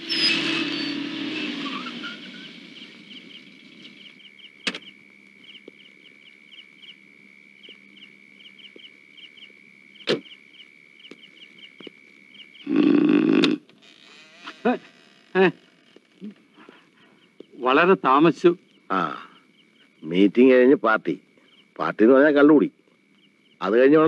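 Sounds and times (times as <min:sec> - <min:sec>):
night insects chirping: 0:00.0 - 0:24.0
short vocal sounds: 0:12.6 - 0:13.6.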